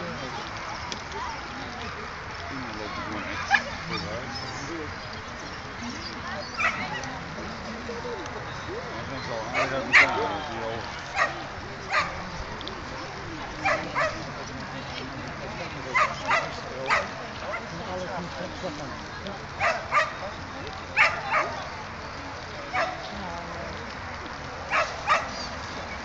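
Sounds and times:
dog barking: 0:06.6 - 0:07.0, 0:09.5 - 0:10.2, 0:11.2 - 0:12.2, 0:13.6 - 0:14.3, 0:15.9 - 0:17.7, 0:19.6 - 0:20.2, 0:21.0 - 0:21.6, 0:22.7 - 0:23.0, 0:24.7 - 0:25.4.

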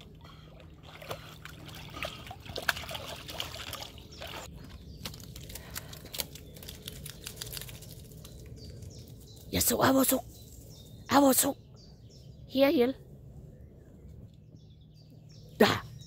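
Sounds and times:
water splashing and trickling: 0:00.0 - 0:09.2.

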